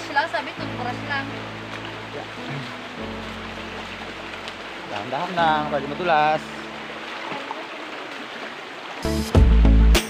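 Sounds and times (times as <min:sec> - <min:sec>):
held low chords: 0:00.0 - 0:07.3, 0:09.0 - 0:10.0.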